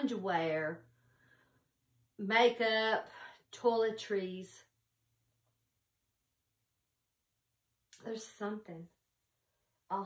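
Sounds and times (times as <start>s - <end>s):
woman's voice: 0.0s - 0.8s, 2.2s - 4.7s.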